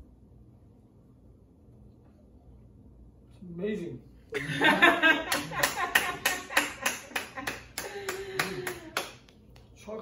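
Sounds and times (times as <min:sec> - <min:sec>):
hands clapping: 0:05.2 - 0:09.8.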